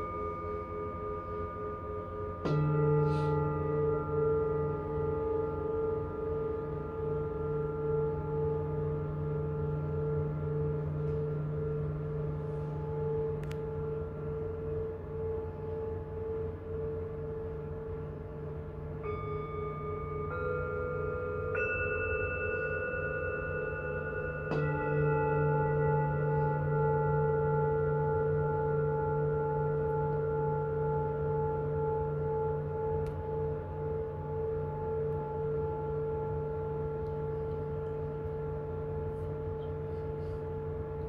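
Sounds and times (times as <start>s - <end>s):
singing bowls ringing: 0.0s - 41.0s.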